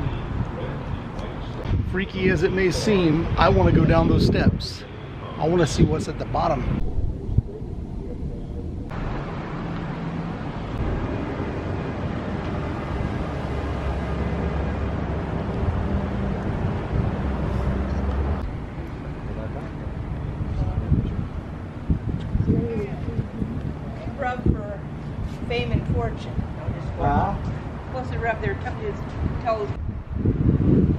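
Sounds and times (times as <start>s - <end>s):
wind on microphone: 0.0s - 9.4s, 10.5s - 30.9s
road traffic passing: 0.0s - 30.9s.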